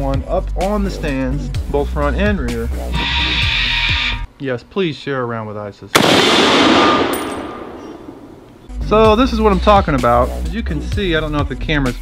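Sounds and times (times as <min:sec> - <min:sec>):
gunshot-like blast: 0:06.0 - 0:08.4.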